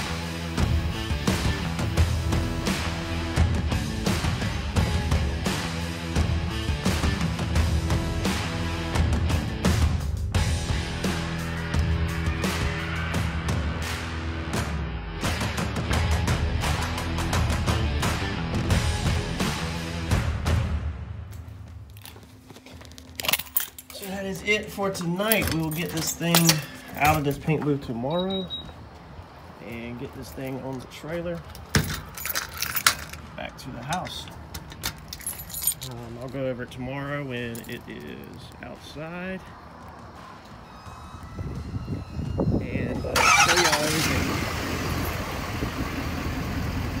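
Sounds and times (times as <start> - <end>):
handling clicks and crackles: 21.4 - 24.3, 29.7 - 36.4
vehicle engine starting: 43.0 - 47.0.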